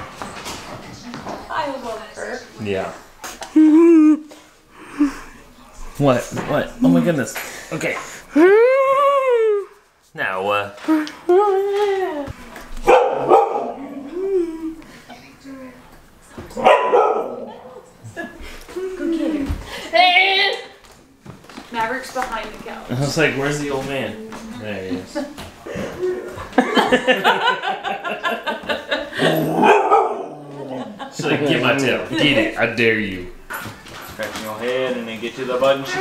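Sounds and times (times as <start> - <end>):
dog barking: 12.8 - 14.0, 16.6 - 17.8, 29.5 - 30.5.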